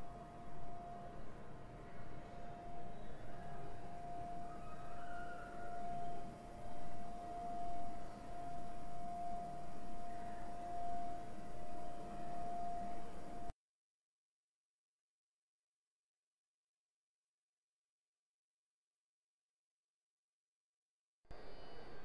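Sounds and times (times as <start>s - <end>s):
faint low noise: 0.0s - 13.5s, 21.3s - 22.0s
steady pitched drone tone: 0.0s - 13.5s.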